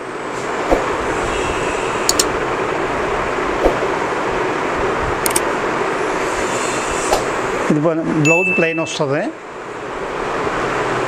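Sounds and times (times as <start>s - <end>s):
steady rushing noise: 0.0s - 8.2s.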